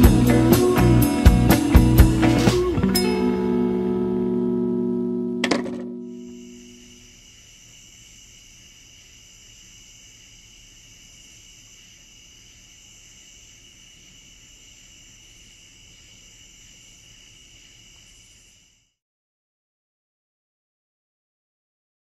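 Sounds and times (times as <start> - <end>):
crickets chirping: 0.0 - 19.0.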